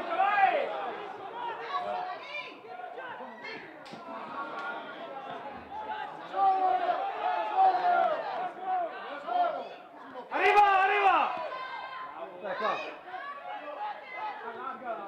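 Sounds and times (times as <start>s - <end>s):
crowd shouting and calling: 0.0s - 15.0s.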